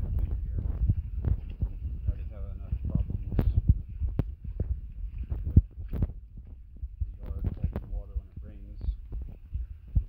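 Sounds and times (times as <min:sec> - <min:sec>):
wind buffeting phone microphone: 0:00.0 - 0:10.0.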